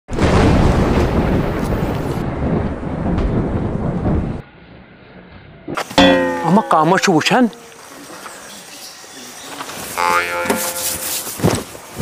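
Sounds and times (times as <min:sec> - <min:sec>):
loud rough rumbling: 0:00.1 - 0:05.7.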